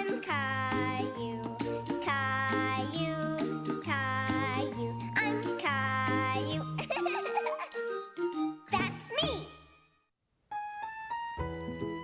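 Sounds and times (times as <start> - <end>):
child singing: 0.0 - 6.8.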